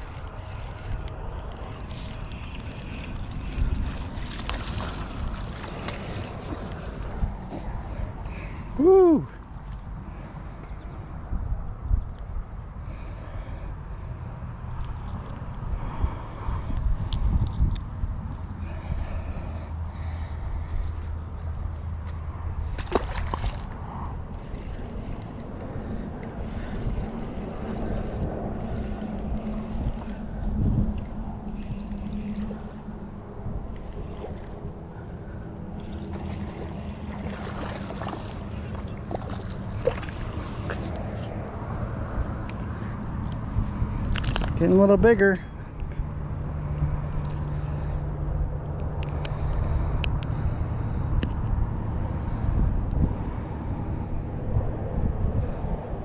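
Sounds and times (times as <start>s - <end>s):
water sloshing: 0.0s - 8.5s, 22.6s - 30.3s, 33.7s - 42.9s
low steady hum: 0.0s - 56.0s.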